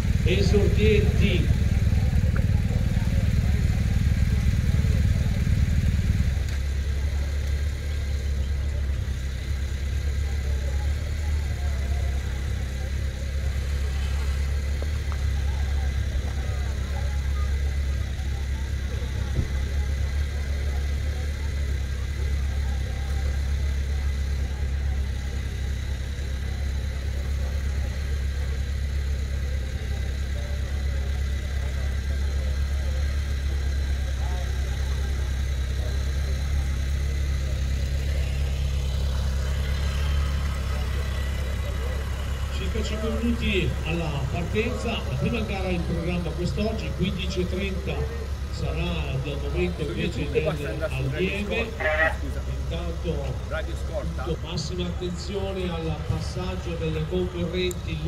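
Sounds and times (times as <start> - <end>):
faint spectator voices: 0.0 - 58.0
vehicle engine idling: 0.0 - 58.0.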